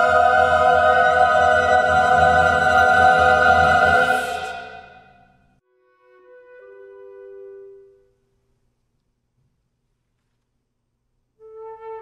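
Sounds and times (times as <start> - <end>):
music: 0.0 - 9.0, 11.3 - 12.0.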